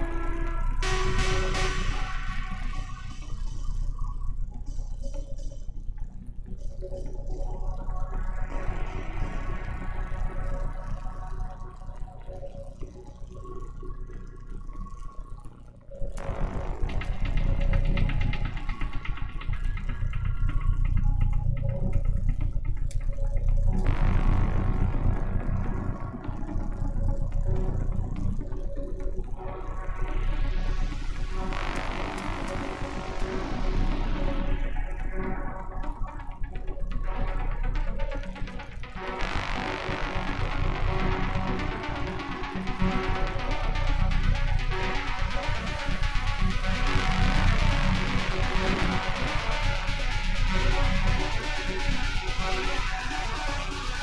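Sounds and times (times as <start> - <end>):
electronic dance music: 0.0 - 5.7, 16.2 - 21.6, 23.4 - 54.0.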